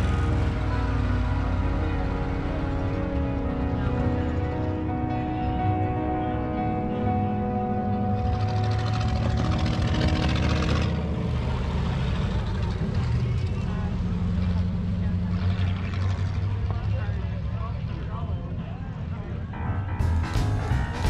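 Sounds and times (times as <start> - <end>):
race car engines droning: 0.0 - 21.0
voices: 12.2 - 20.0.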